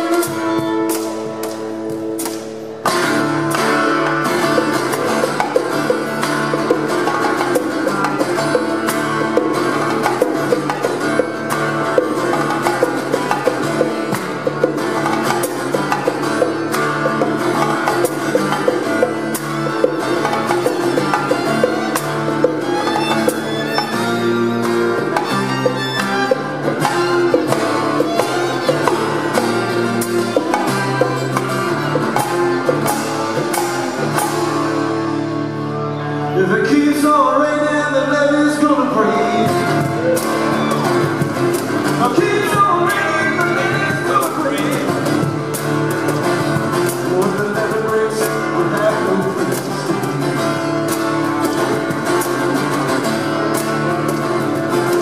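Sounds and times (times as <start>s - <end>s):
hand drums: 0.0s - 35.4s, 39.3s - 55.0s
violin: 0.0s - 37.8s, 38.6s - 46.8s
acoustic guitar: 0.0s - 55.0s.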